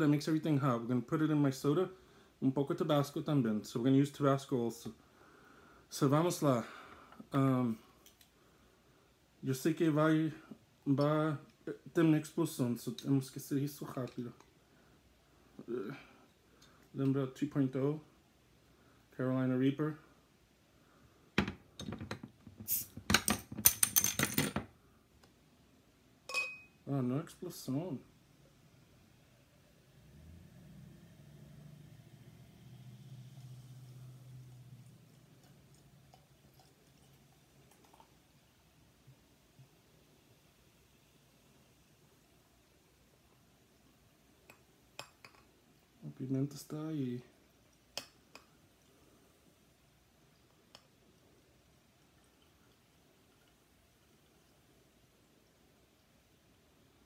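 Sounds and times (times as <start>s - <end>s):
bottle fizzing hiss: 22.6s - 23.0s
metallic clinks and rattles: 23.2s - 24.6s
bottle clinking against glass rim: 26.3s - 26.8s.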